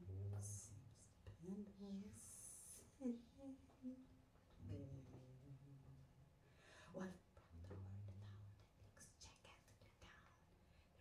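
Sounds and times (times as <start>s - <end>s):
faint whispering: 6.9s - 11.0s.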